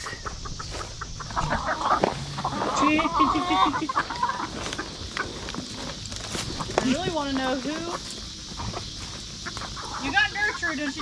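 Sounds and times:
hens clucking: 0:00.0 - 0:11.0
steady high hiss: 0:00.0 - 0:11.0.

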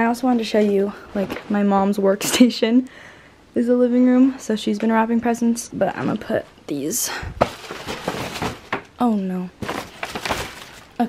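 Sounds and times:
paper bags rustling: 0:07.4 - 0:08.9, 0:09.6 - 0:11.0.

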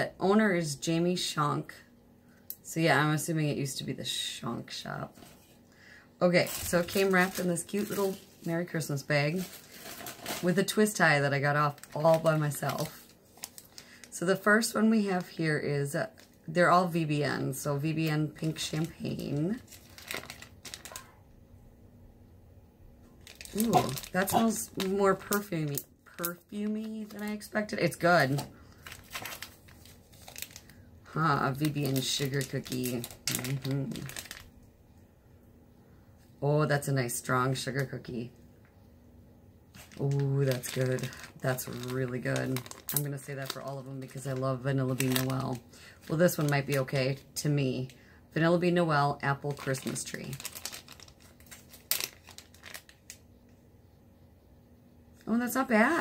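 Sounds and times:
plastic bag crinkling: 0:06.2 - 0:21.3, 0:23.1 - 0:34.7, 0:39.7 - 0:48.0, 0:49.2 - 0:53.4.

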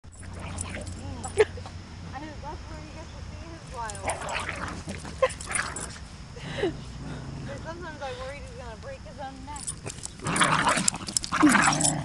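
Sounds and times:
dogs yipping and whining: 0:04.0 - 0:06.0, 0:09.8 - 0:12.0.

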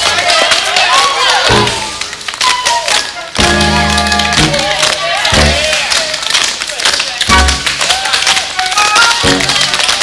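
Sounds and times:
tap shoes striking stage: 0:00.0 - 0:10.0
loud band music: 0:01.4 - 0:05.8, 0:07.3 - 0:07.8.

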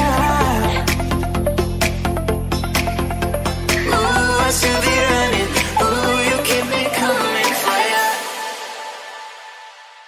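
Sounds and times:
pop music: 0:00.0 - 0:10.0.

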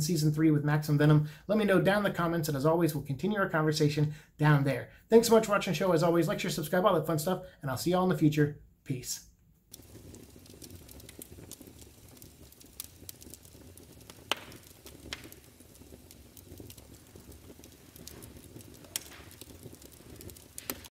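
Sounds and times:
fire crackling in a fireplace: 0:08.9 - 0:20.9.

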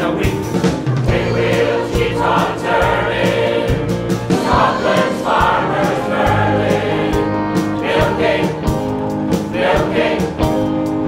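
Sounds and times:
choir singing pop song: 0:00.0 - 0:10.6
backing track with steady beat: 0:00.0 - 0:11.0.

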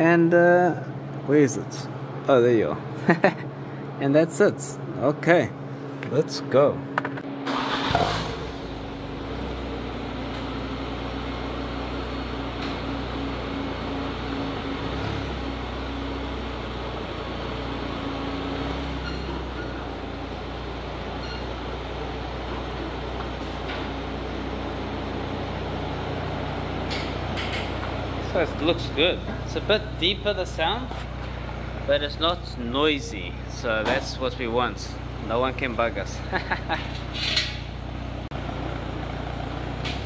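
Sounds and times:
car engine idling: 0:07.5 - 0:40.0.

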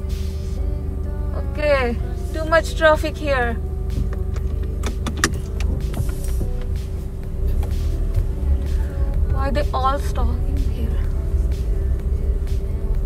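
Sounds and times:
car engine rumbling: 0:00.0 - 0:13.0
music: 0:00.0 - 0:13.0
sharp clicks: 0:03.9 - 0:06.8.

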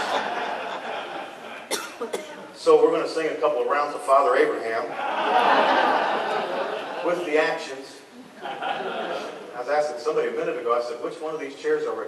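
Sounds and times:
congregation laughing: 0:00.0 - 0:02.2, 0:04.9 - 0:07.3, 0:08.2 - 0:09.6.

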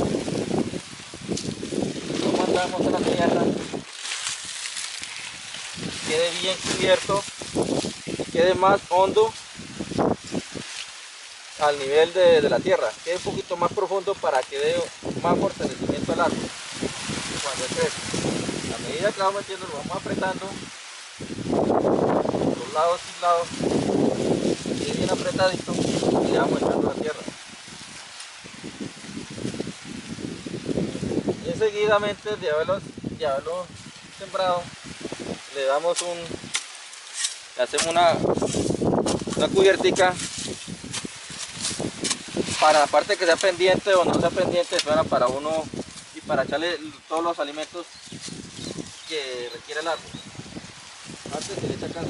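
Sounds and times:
soil and dry leaves rustling: 0:00.0 - 0:52.0
steady outdoor hiss: 0:00.0 - 0:52.0
hands pressing soil: 0:35.8 - 0:46.1.

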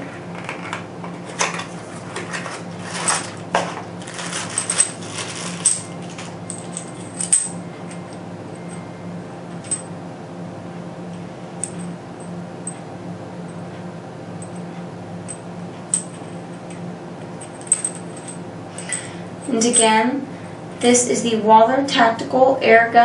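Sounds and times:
steady low hum: 0:00.0 - 0:23.0
cardboard and cord rustling: 0:00.3 - 0:06.4.

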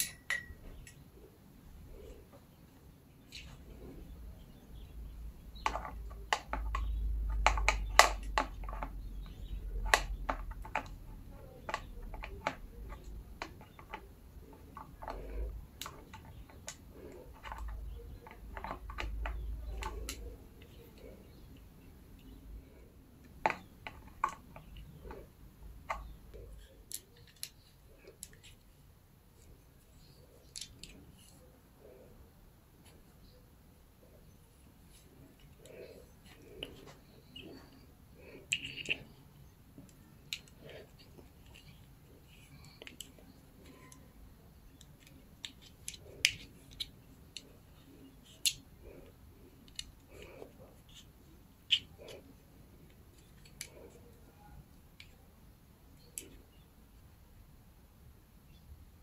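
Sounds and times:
plastic clicks and taps: 0:05.6 - 0:21.6, 0:23.2 - 0:28.5
soft rubbing of plastic and cable: 0:34.1 - 0:55.2.

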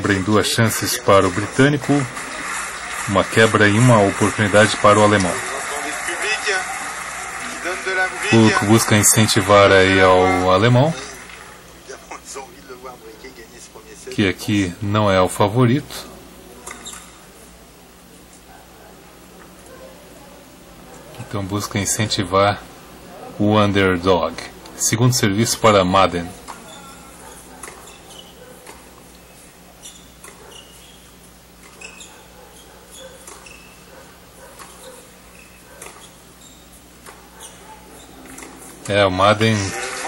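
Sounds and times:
shoes squeaking on court: 0:16.6 - 0:17.2, 0:26.4 - 0:38.9.

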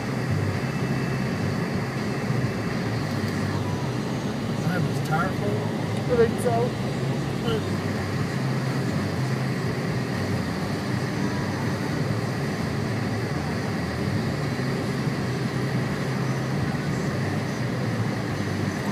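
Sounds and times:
car engine hum: 0:00.0 - 0:18.9.

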